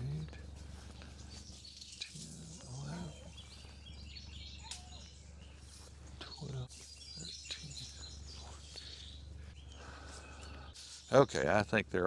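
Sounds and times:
faint bird chirps: 0.0s - 12.0s
low background rumble: 0.0s - 12.0s.

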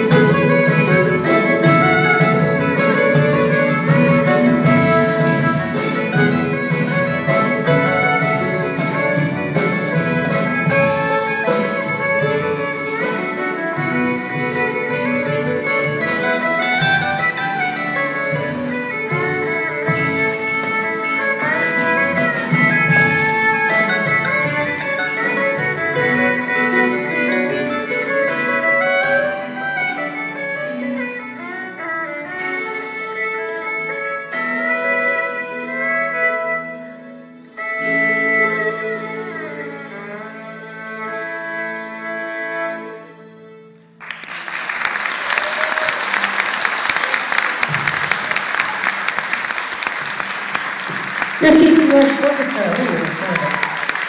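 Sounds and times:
violin and mandolin ensemble: 0.0s - 44.1s, 47.0s - 54.0s
audience applause: 44.0s - 54.0s.

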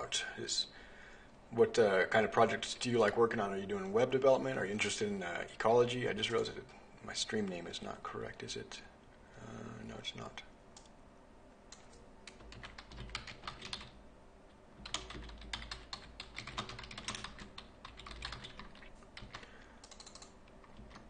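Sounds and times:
typing on computer keyboard: 11.7s - 14.0s, 14.8s - 21.0s.

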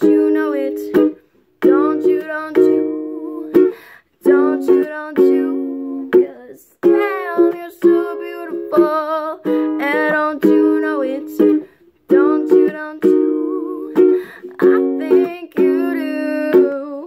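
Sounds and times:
ukulele strumming: 0.0s - 17.0s
woman singing wordless melody: 0.0s - 17.0s.

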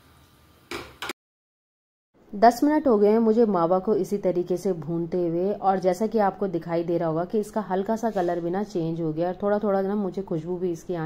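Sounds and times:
spatula scraping steel pan: 8.0s - 8.6s.

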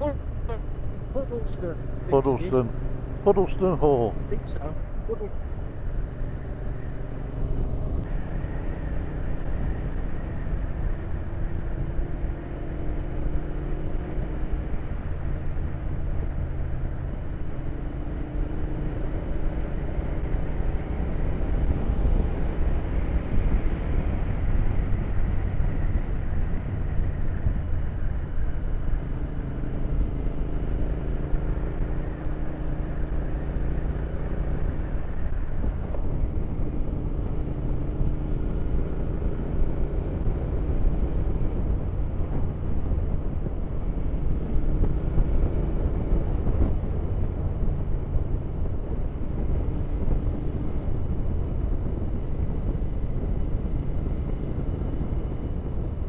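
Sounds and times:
wind rush on microphone: 20.2s - 56.0s.

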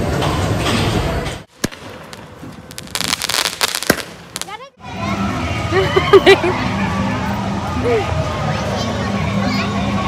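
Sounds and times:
fireworks crackling: 1.4s - 4.8s
fireworks bang: 1.5s - 4.6s.

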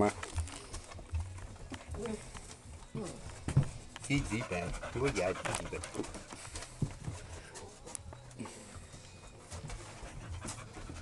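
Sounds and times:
puppies panting and scuffling: 0.3s - 11.0s.

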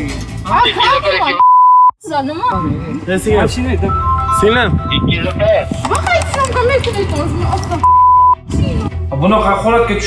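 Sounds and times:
high censor beep: 1.4s - 2.8s, 7.8s - 8.4s.

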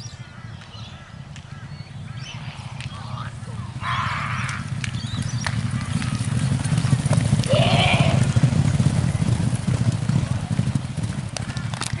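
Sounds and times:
horses galloping on turf: 0.1s - 12.0s
rising and falling call: 2.2s - 8.5s.

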